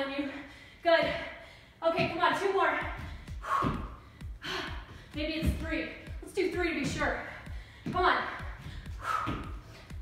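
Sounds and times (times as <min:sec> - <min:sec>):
woman's breathy effort sounds: 0:03.0 - 0:05.2, 0:07.3 - 0:09.8.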